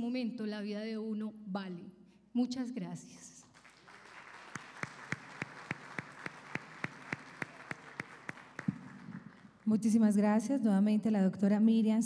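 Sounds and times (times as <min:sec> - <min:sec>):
single person clapping evenly: 0:03.6 - 0:09.5
audience applauding: 0:03.6 - 0:09.7.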